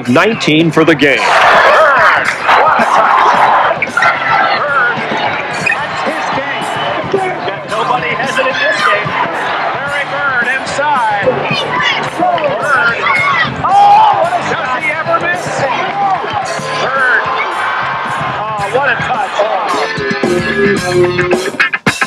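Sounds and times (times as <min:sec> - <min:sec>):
voices: 0:00.0 - 0:21.4
arena crowd: 0:00.0 - 0:22.0
music: 0:00.0 - 0:22.0.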